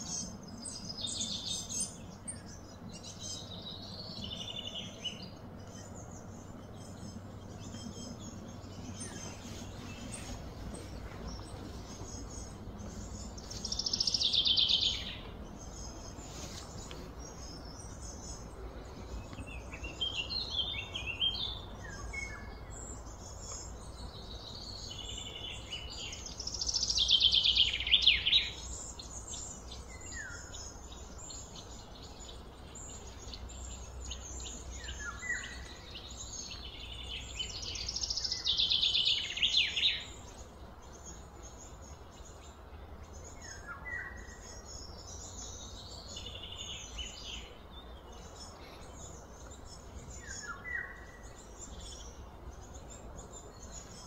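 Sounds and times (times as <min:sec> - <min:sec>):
steady low rumble: 0:00.0 - 0:37.6
birds calling: 0:00.0 - 0:54.0.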